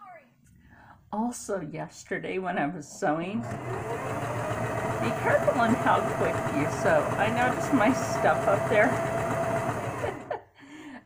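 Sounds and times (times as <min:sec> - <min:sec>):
sewing machine whirring: 0:03.4 - 0:10.4.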